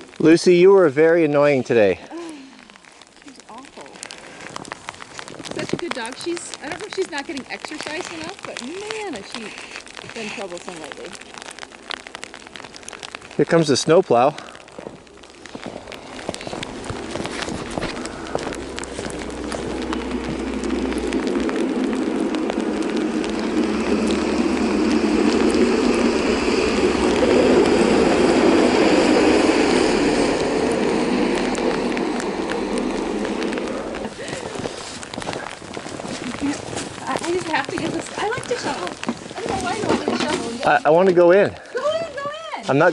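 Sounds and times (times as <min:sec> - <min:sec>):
snowplow passing by: 0:15.1 - 0:41.5.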